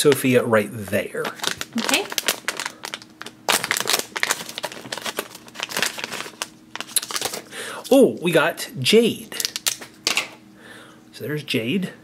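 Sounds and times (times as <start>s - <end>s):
foil bag crinkling: 1.1s - 7.9s, 9.4s - 10.3s.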